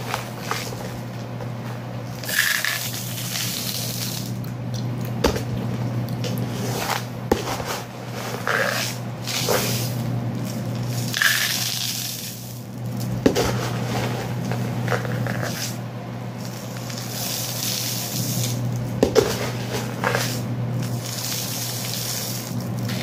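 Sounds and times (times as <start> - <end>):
beans and rice pouring: 2.2 - 4.4, 6.5 - 23.0
sharp clicks of grains: 2.2 - 4.4, 8.4 - 12.6, 16.4 - 19.4.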